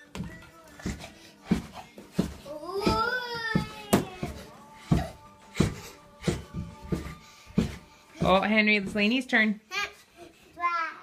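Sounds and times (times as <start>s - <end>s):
dull trampoline thumps: 0.2s - 9.2s.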